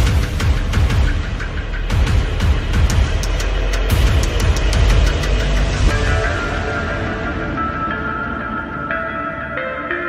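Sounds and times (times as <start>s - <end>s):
film soundtrack music: 0.0s - 10.0s.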